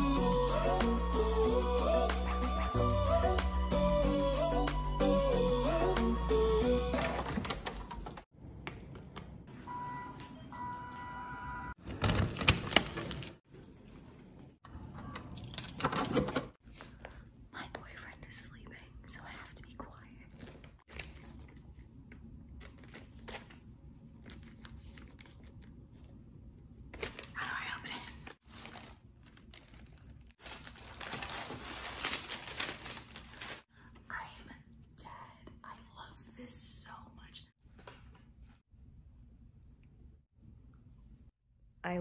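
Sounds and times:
woman whispering: 17.5s - 20.5s, 27.4s - 28.4s, 34.0s - 37.6s
paper wrapping crinkling: 22.5s - 25.8s, 26.9s - 33.7s.

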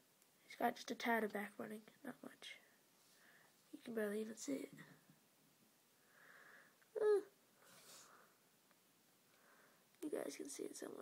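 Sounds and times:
person breathing softly: 2.6s - 3.7s, 6.0s - 8.5s, 9.3s - 9.9s.

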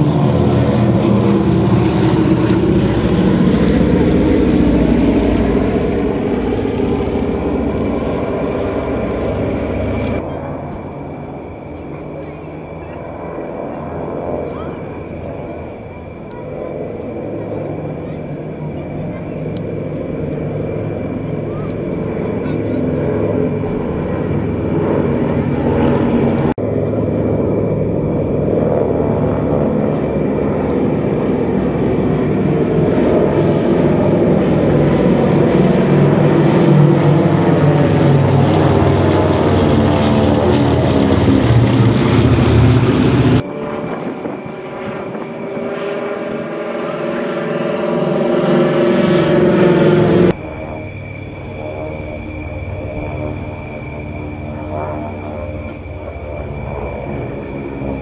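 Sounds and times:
propeller aircraft flying past: 0.0s - 58.0s.

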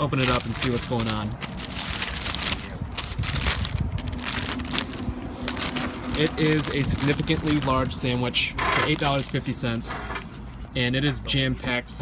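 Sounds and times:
paper crinkling: 0.0s - 10.9s.

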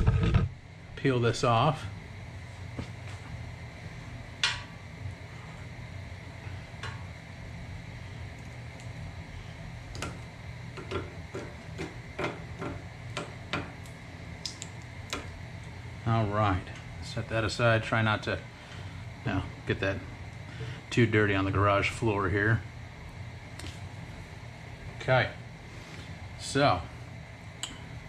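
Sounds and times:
low hum: 0.0s - 28.0s.

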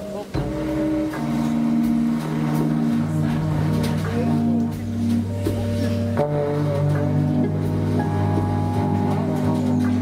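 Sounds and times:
bass line: 0.0s - 10.0s
trombone long low notes: 0.1s - 10.0s
drum hit: 0.3s - 10.0s.

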